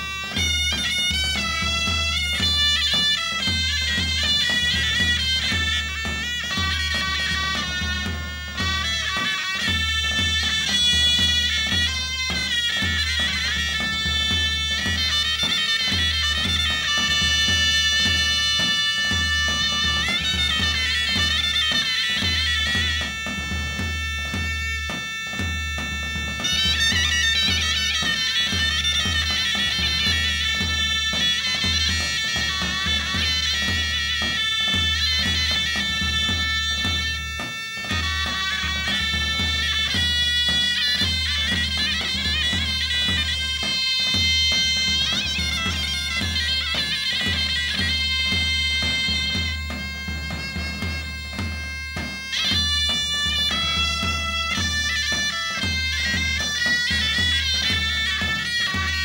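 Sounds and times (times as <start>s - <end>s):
reed pipe melody: 0.0s - 59.0s.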